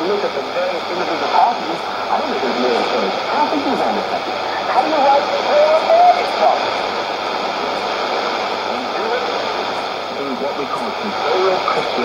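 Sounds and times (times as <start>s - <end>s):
man's voice on radio: 0.0s - 7.8s, 8.6s - 12.0s
radio static hiss: 0.0s - 12.0s.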